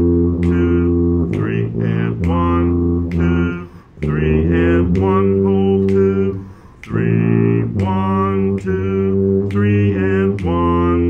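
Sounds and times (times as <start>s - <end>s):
tuba playing waltz melody: 0.0s - 11.0s.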